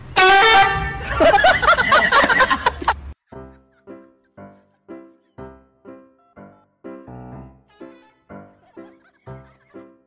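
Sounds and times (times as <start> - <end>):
comedy honking horn: 0.1 - 1.8, 6.4 - 10.0.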